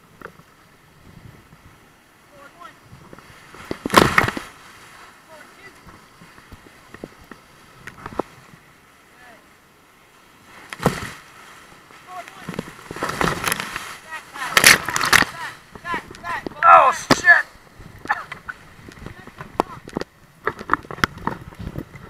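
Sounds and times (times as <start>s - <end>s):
waves splashing over boat: 0.0s - 22.0s
whitewater rapids rushing: 8.4s - 19.6s.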